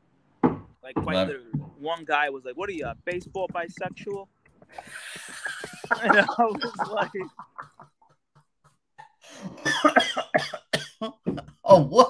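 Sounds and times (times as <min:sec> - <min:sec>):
man coughing hard: 0:09.6 - 0:11.2.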